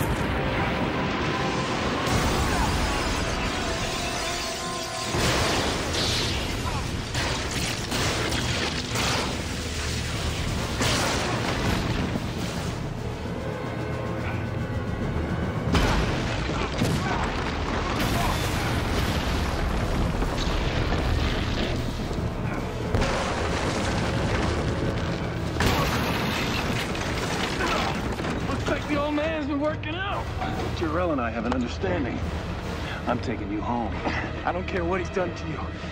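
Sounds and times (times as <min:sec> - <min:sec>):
dramatic action music: 0:00.0 - 0:35.9.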